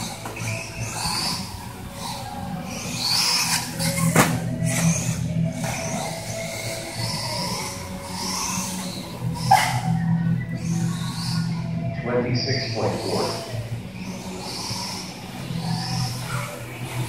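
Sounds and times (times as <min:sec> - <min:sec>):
electric motor whining: 0:00.0 - 0:17.0.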